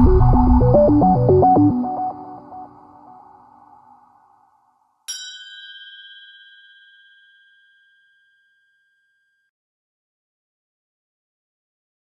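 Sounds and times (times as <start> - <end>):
bright electronic chime: 0.0 - 3.7
electronic music: 0.0 - 4.0.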